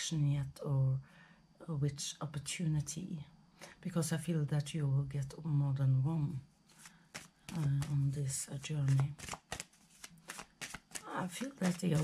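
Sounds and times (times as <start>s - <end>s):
cards being shuffled: 6.7s - 12.0s.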